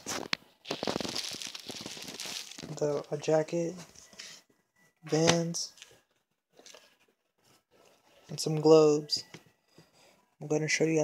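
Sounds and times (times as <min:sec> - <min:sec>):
plastic bag crinkling: 0:00.0 - 0:03.2.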